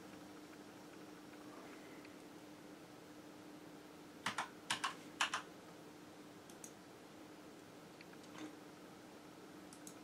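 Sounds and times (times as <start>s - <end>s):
keyboard keystrokes: 4.2s - 5.5s.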